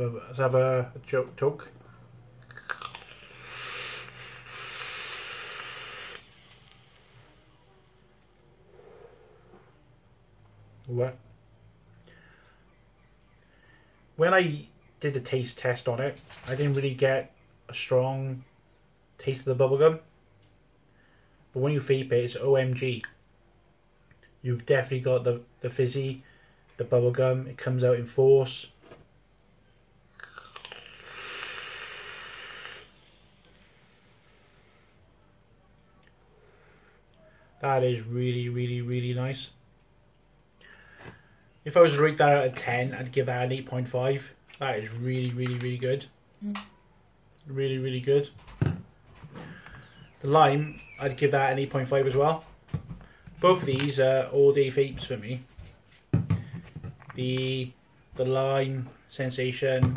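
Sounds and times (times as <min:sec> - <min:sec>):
e-cigarette crackling: 0:02.4 - 0:07.1, 0:30.2 - 0:33.2
breathy vapour exhale: 0:02.8 - 0:07.6, 0:08.6 - 0:09.7, 0:30.3 - 0:35.0
hissing vape draw: 0:03.0 - 0:07.4, 0:30.6 - 0:34.1.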